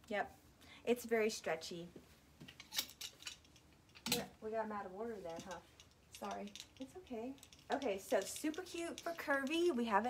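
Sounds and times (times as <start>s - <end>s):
clothes hangers clicking: 2.5s - 4.4s, 5.2s - 10.0s.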